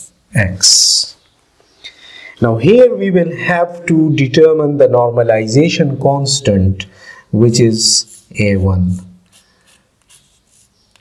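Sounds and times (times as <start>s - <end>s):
chalk scratching on blackboard: 7.8s - 11.0s.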